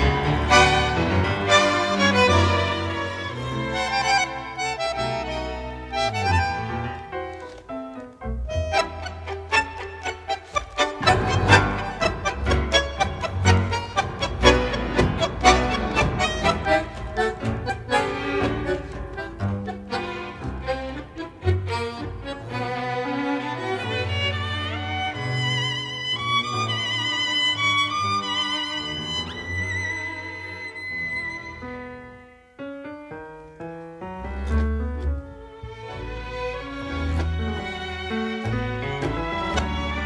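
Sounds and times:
piano stepped notes: 0:00.0 - 0:22.6, 0:29.0 - 0:40.0
tango orchestra with violins: 0:00.0 - 0:40.0.

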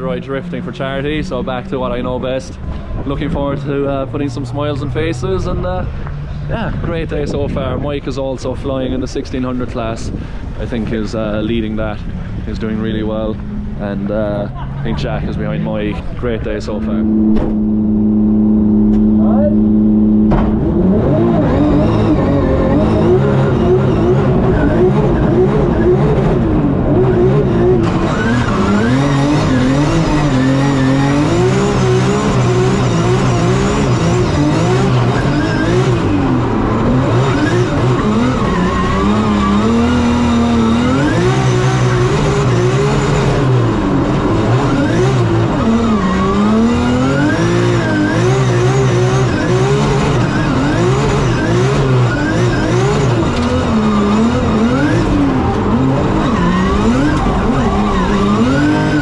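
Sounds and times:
car engine revving: 0:00.0 - 0:59.0
tyre squeal: 0:27.8 - 0:43.2, 0:44.4 - 0:59.0.

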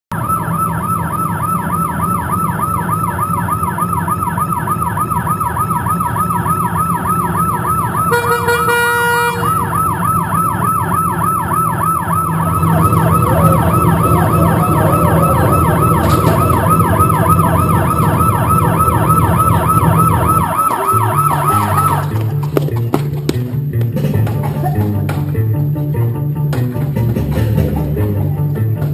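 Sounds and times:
emergency siren yelping: 0:00.1 - 0:23.0
low steady rumble: 0:00.1 - 0:24.4
steady pitched tone: 0:00.2 - 0:22.4
beat of low notes: 0:00.2 - 0:28.9.

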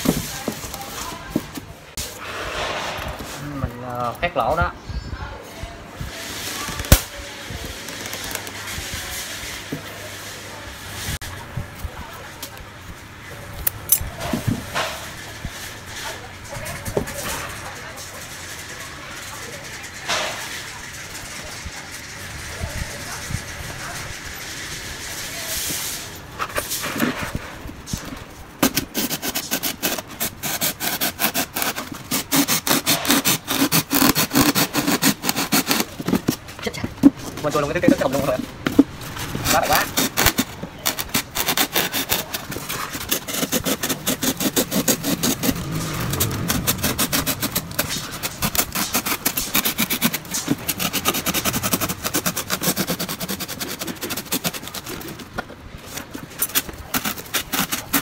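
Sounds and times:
blade cutting polystyrene foam: 0:00.0 - 0:03.6, 0:06.4 - 0:09.5, 0:22.6 - 0:36.5, 0:37.3 - 0:58.0.

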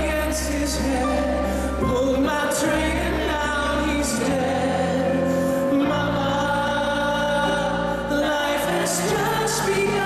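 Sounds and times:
musical accompaniment: 0:00.0 - 0:10.0.

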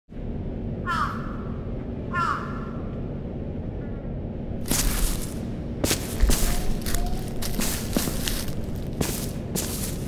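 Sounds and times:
steady low rumble: 0:00.1 - 0:10.0.

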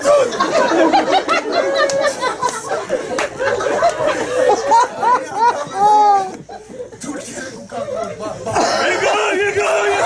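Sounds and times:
man coughing: 0:08.5 - 0:09.0.

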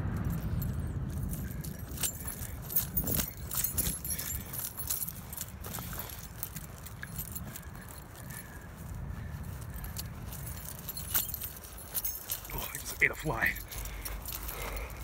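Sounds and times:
footsteps through dry grass: 0:00.0 - 0:15.0.

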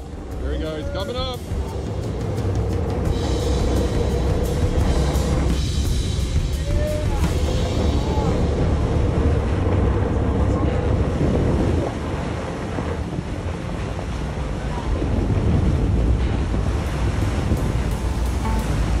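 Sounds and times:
background music: 0:00.0 - 0:19.0
sea washing around boat: 0:00.0 - 0:19.0
wind rumbling on microphone: 0:00.0 - 0:19.0.

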